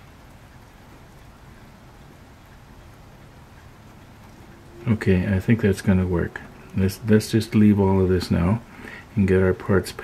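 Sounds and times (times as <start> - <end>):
low hum: 0.0 - 9.3
soft hiss: 0.0 - 10.0.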